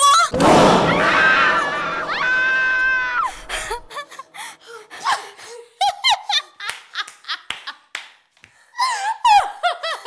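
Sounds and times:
woman screaming: 0.0s - 3.8s
woman laughing: 3.5s - 7.6s, 8.8s - 10.0s.

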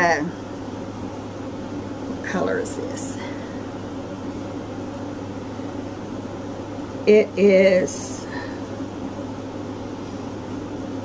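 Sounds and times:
fan running with hum and hiss: 0.0s - 11.0s.

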